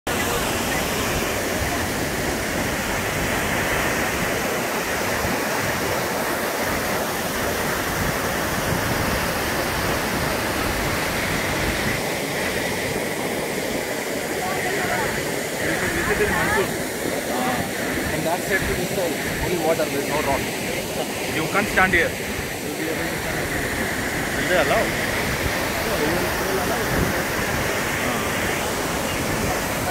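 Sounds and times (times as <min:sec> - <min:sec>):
waterfall rushing: 0:00.1 - 0:29.9.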